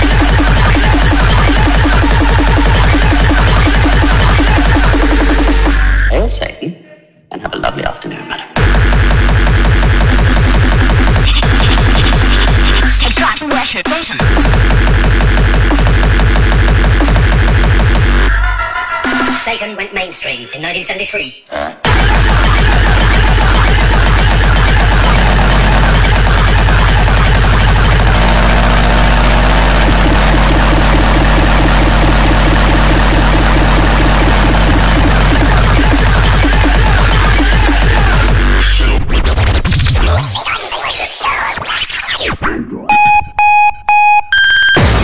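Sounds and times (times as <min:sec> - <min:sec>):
distorted industrial electronic music: 0:00.0 - 0:06.5, 0:08.5 - 0:19.8, 0:21.8 - 0:45.0
electronic music pitch glides: 0:21.9 - 0:37.4
electronic beeps: 0:42.9 - 0:45.0.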